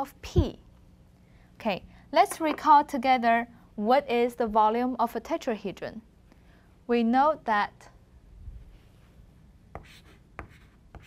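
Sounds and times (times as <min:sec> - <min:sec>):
chalk taps: 0:09.7 - 0:11.0
chalk scratching on blackboard: 0:09.8 - 0:11.0.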